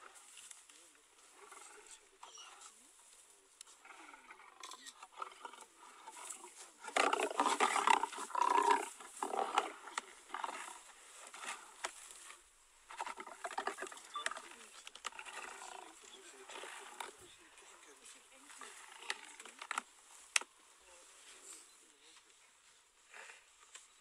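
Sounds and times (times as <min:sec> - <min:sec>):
lions growling and snarling: 0:01.2 - 0:02.8, 0:03.6 - 0:19.9.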